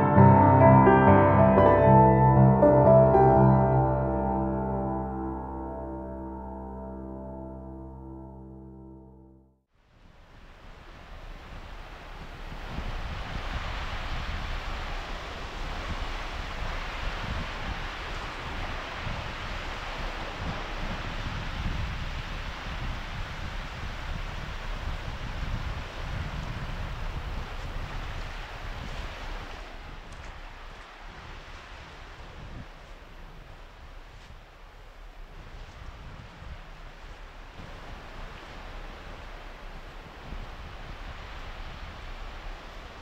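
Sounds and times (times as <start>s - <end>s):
surf washing onto sand: 10.0s - 43.0s
wind buffeting microphone: 10.0s - 43.0s.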